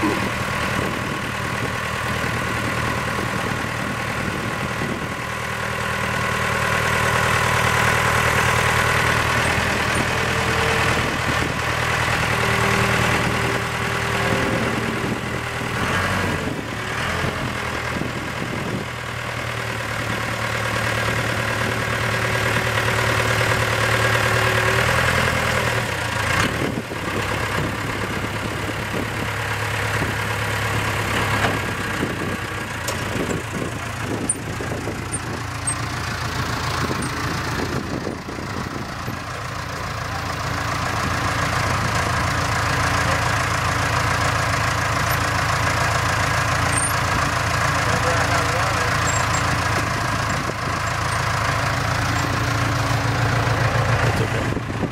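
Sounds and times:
diesel engine running: 0:00.0 - 0:54.9.

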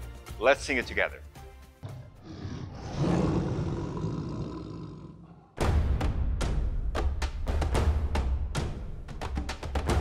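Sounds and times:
lion roaring: 0:01.8 - 0:05.6
drums and percussion music: 0:05.6 - 0:10.0.

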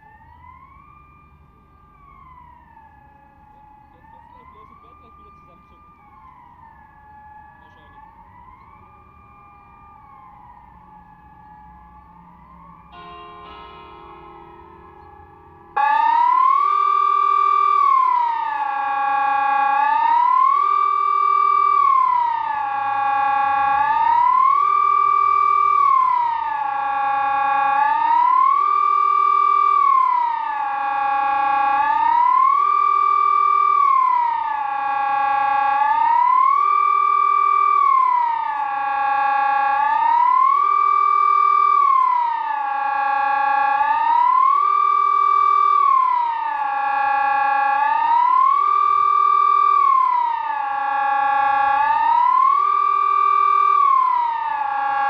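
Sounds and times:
rising and falling siren: 0:00.0 - 0:55.0.

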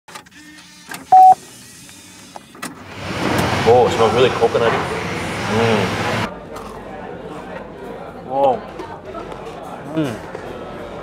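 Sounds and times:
electronic beep: 0:01.1 - 0:01.4.

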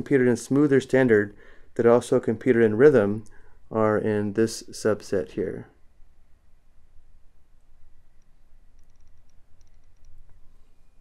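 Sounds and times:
low steady hum: 0:00.0 - 0:11.0
stylus ticking on drawing tablet: 0:08.1 - 0:10.4.

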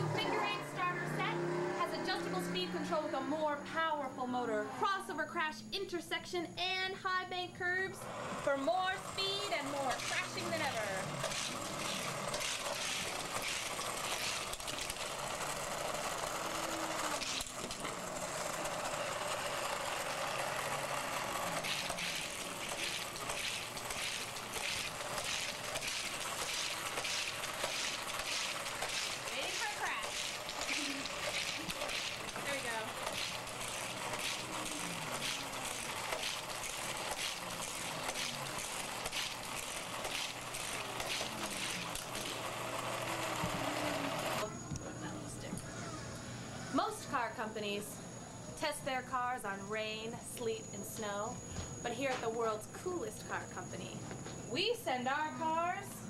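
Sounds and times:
toy track booster running: 0:08.0 - 0:44.5
toy cars rattling on track: 0:08.3 - 0:44.5.

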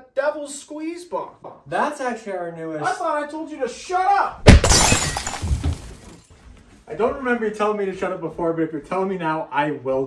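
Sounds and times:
glass shattering: 0:04.5 - 0:06.3.

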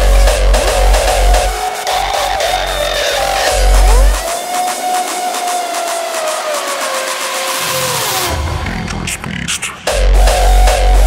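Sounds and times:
bass: 0:00.0 - 0:04.4, 0:07.9 - 0:11.0
synth lead sliding down in pitch: 0:00.0 - 0:08.4
electronic dance music: 0:00.0 - 0:11.0.

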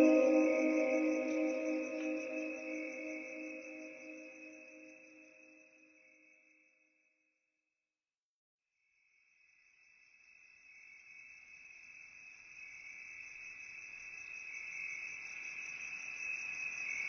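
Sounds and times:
insect chirping trill: 0:00.0 - 0:05.3.

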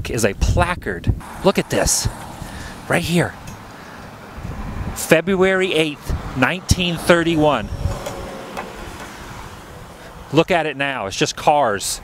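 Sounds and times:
low rumble: 0:07.2 - 0:09.8.

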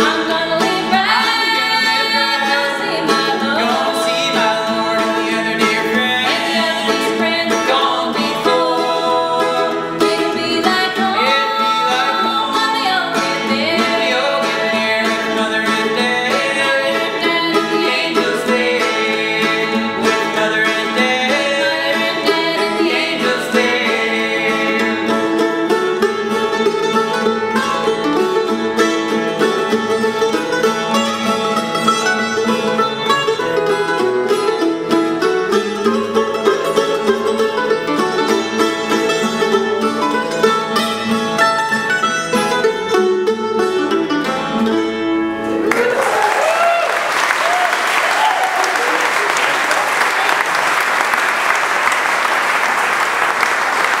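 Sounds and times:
mandolin and acoustic guitar: 0:00.0 - 0:46.8
audience applause: 0:45.6 - 0:54.0.

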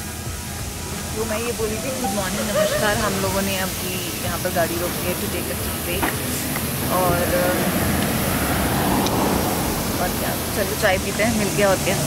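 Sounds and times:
highway traffic rush: 0:02.6 - 0:12.0.

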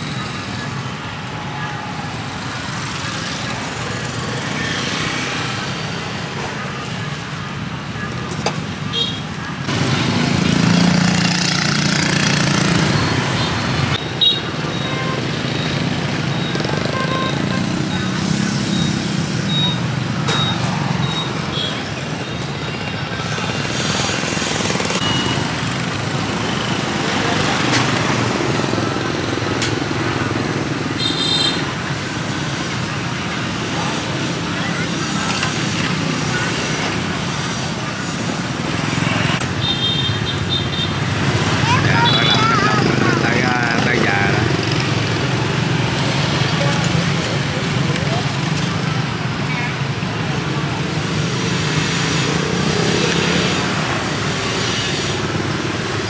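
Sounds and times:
motorbike and road traffic hum: 0:00.0 - 0:56.0
short high beeps: 0:18.6 - 0:21.3
people talking: 0:32.7 - 0:39.4, 0:41.4 - 0:44.7, 0:45.7 - 0:50.9.

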